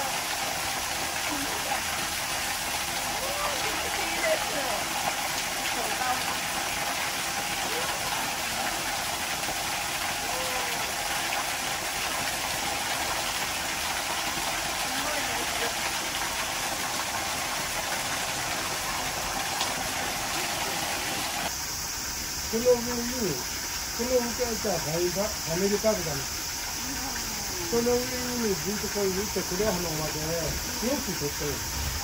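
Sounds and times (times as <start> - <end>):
water splashing onto rocks: 0.0 - 21.5.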